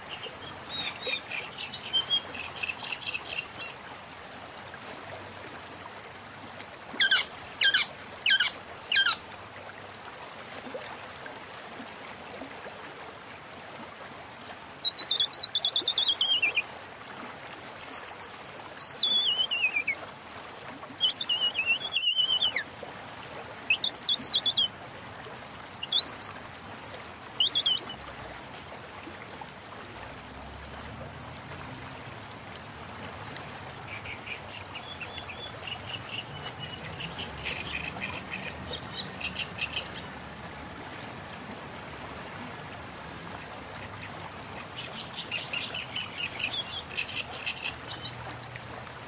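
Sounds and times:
small birds chirping: 21.0 - 22.6.

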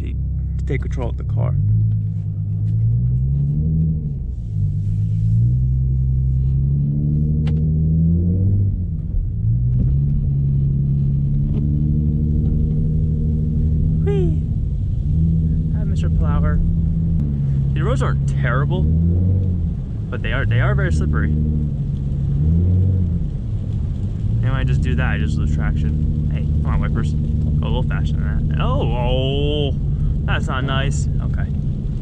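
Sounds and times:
car engine accelerating: 0.0 - 32.0.

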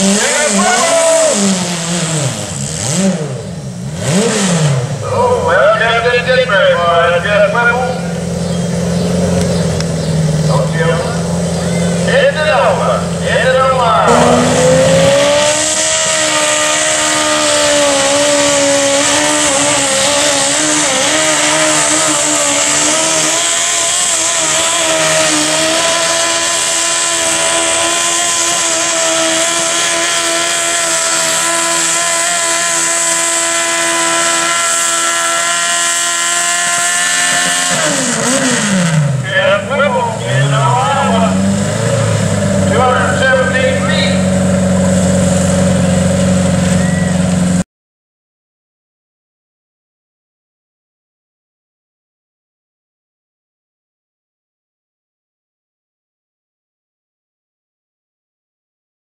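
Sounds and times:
garden tractor engine at full throttle: 0.0 - 47.6.

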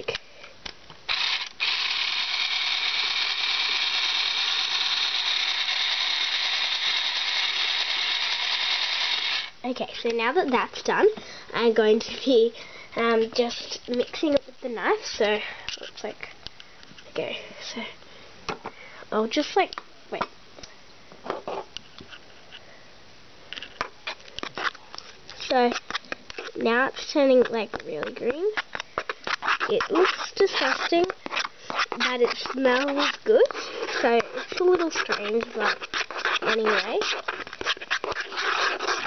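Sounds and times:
squelching and scraping strokes: 23.8 - 39.0
knife mashing in plastic bowl: 24.1 - 39.0.

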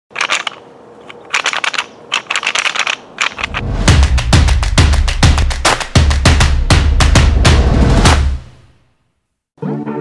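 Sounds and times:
music with bass drum beat: 3.7 - 8.5.

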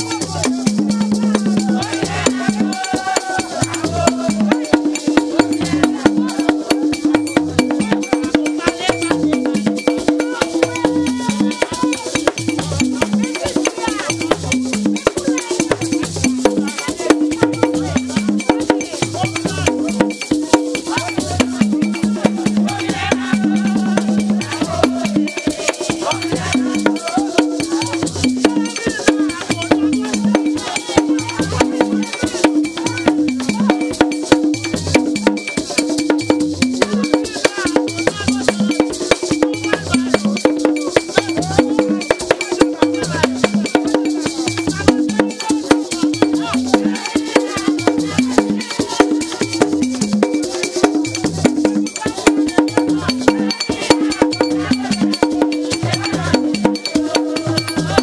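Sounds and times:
group of voices chanting: 0.0 - 7.2, 10.2 - 14.2, 15.0 - 34.0, 41.2 - 49.7, 51.2 - 58.0
dense ceremonial drumming: 0.0 - 58.0.

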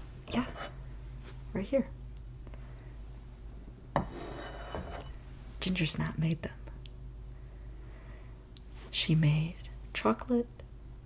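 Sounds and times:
cookies scraping across surface: 4.0 - 5.2.

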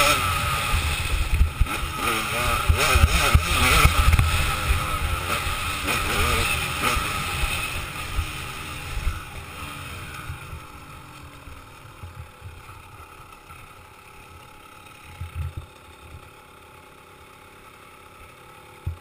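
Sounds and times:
dirt bike engine slowing down: 0.0 - 19.0.

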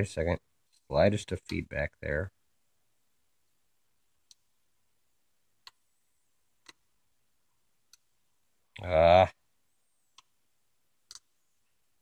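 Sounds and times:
man saying ah: 8.8 - 9.3.

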